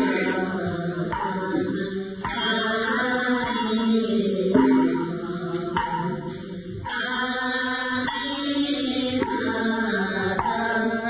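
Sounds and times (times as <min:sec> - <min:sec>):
slow music of long held notes: 0:00.0 - 0:11.0.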